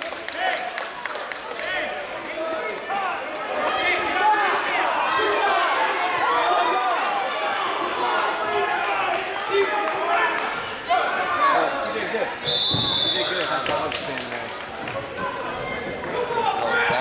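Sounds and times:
many voices talking: 0:00.0 - 0:17.0.

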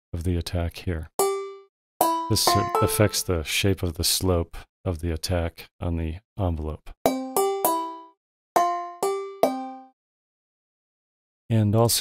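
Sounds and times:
handbell notes: 0:01.2 - 0:03.3, 0:08.6 - 0:09.9.

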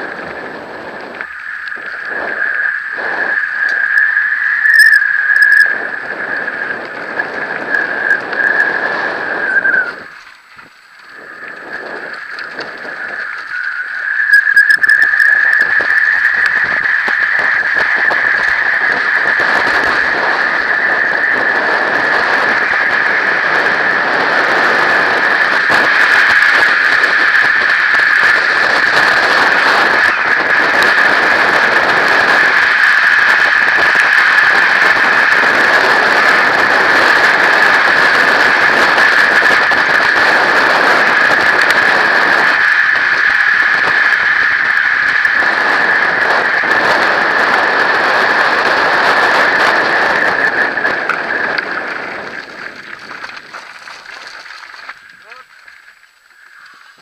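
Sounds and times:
high-pitched buzz: 0:00.0 - 0:52.7
wind rushing over microphone: 0:00.0 - 0:55.8
tyres rolling on gravel: 0:15.0 - 0:57.0.

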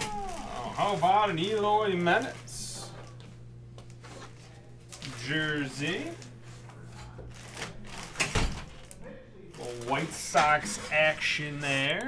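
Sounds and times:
plastic bag crinkling and rustling: 0:00.0 - 0:03.2, 0:03.8 - 0:12.0.

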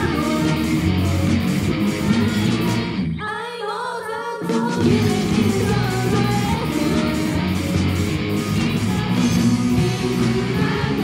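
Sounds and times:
live rock band playing: 0:00.0 - 0:03.2, 0:04.8 - 0:11.0
woman singing lead vocal: 0:00.0 - 0:11.0.

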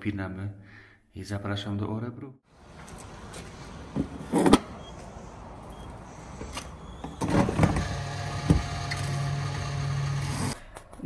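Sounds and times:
fuel pump motor humming: 0:05.9 - 0:10.6.

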